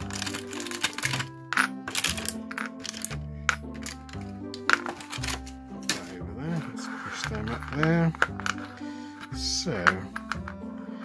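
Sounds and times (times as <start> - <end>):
metal figures clicking and clinking: 0.0 - 6.2, 7.2 - 10.7
background music with bass line: 0.0 - 11.0.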